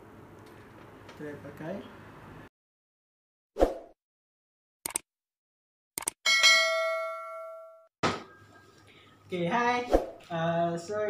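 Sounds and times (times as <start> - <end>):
quick clicks: 4.8 - 5.1, 6.0 - 6.2
bright bell ding: 6.3 - 8.5.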